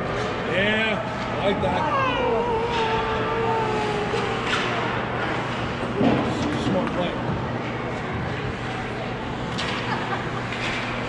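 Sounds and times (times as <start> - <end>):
din of ice rink: 0.0 - 11.0
person calling out: 1.7 - 5.0.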